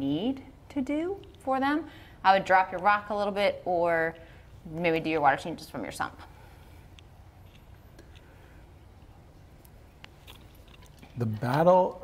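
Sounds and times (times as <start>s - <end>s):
faint clicks and handling noises: 6.9s - 11.2s.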